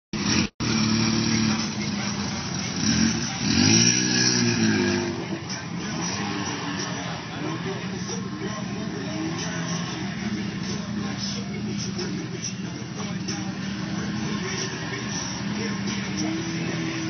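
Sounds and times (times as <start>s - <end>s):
off-road vehicle engine revving: 0.2s - 17.0s.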